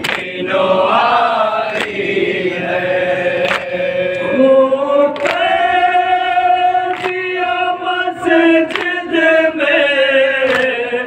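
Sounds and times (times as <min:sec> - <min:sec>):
hands slapping chests: 0:00.0 - 0:00.3, 0:01.8 - 0:02.0, 0:03.4 - 0:03.7, 0:05.2 - 0:05.5, 0:06.9 - 0:07.2, 0:08.7 - 0:09.0, 0:10.5 - 0:10.8
men chanting: 0:00.0 - 0:11.0.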